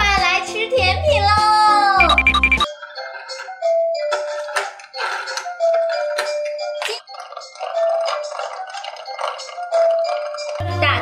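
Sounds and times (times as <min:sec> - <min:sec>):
tinny electronic toy tune: 0:02.0 - 0:02.7.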